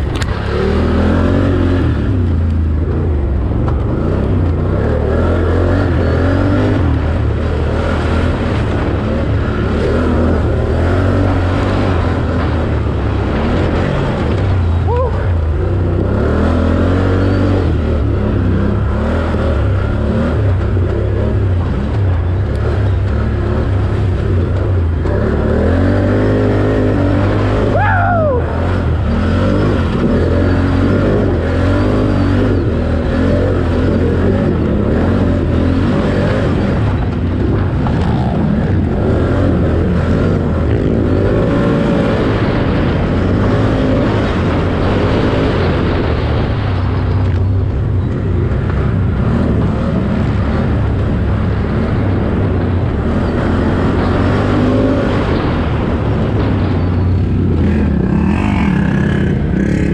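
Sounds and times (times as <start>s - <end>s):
atv engine revving: 0.0s - 59.9s
steady low drone: 0.0s - 59.9s.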